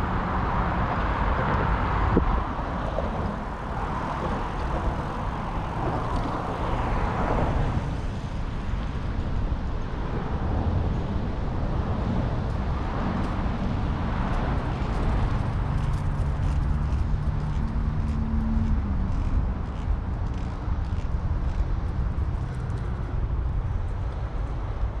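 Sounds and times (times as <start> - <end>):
highway traffic roar: 0.0 - 25.0
wind buffeting microphone: 0.0 - 25.0.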